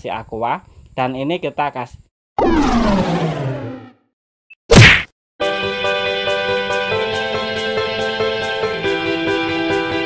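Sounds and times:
falling pitched sweep: 2.4 - 4.1.

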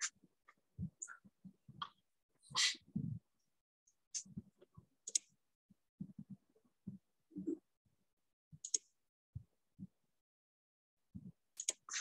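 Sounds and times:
computer mouse clicking: 5.0 - 5.3, 8.6 - 8.9, 11.6 - 12.0.

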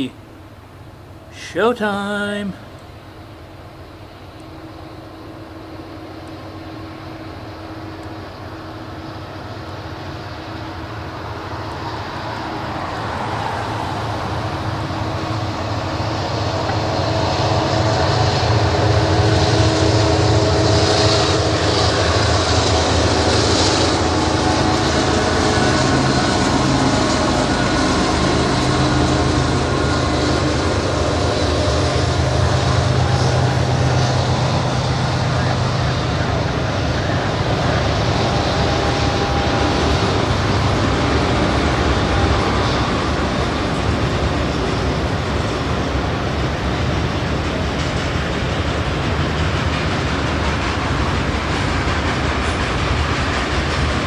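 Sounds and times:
diesel locomotive engines: 0.0 - 54.0
train cars rumbling on rails: 0.0 - 54.0.

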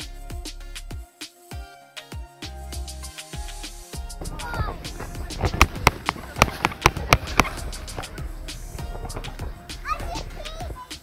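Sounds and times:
music playing: 0.0 - 11.0
children calling out: 4.1 - 11.0
boots crunching on snow: 4.2 - 9.5.

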